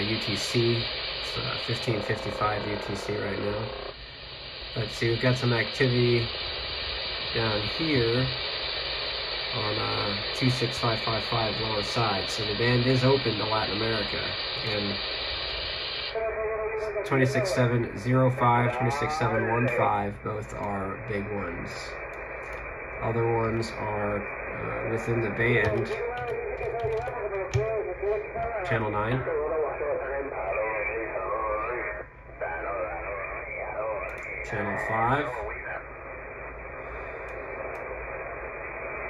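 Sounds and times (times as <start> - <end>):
radio static hiss: 0.0 - 39.0.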